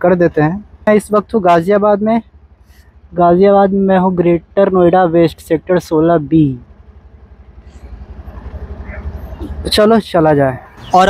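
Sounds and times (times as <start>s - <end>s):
scooter engine pulling away: 6.7s - 9.9s.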